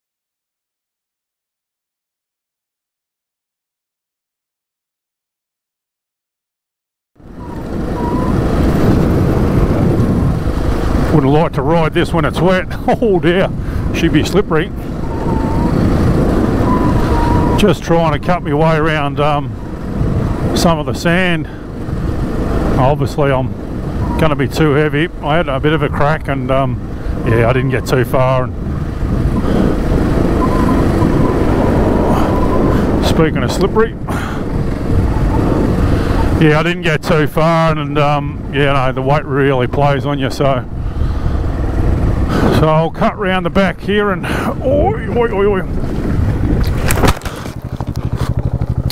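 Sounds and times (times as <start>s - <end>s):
motorcycle engine rumbling: 7.2s - 48.9s
motorcycle engine running: 45.7s - 48.9s.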